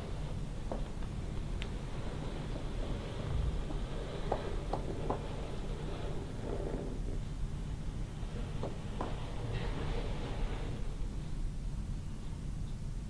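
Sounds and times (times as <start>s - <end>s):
low room hum: 0.0s - 13.0s
planchette sliding across board: 1.8s - 7.2s, 8.2s - 11.3s.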